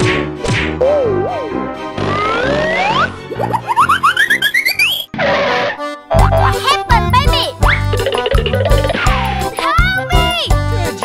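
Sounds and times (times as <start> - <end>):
children's background music: 0.0 - 11.0
bassy beat: 6.1 - 9.5.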